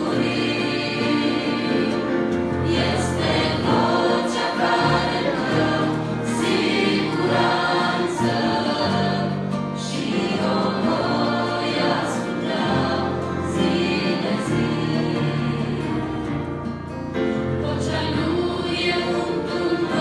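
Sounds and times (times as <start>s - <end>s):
instrumental accompaniment: 0.0s - 20.0s
women's choir singing a hymn: 0.0s - 20.0s.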